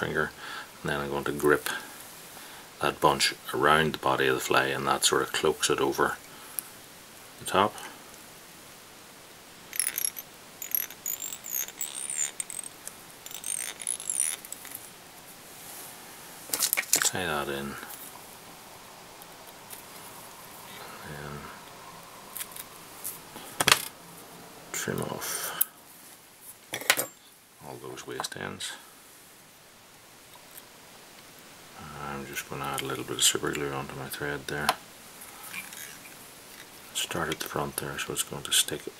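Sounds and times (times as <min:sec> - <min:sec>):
thread scratchy pulls: 0:09.7 - 0:14.9
high squeak of thread: 0:09.8 - 0:14.6.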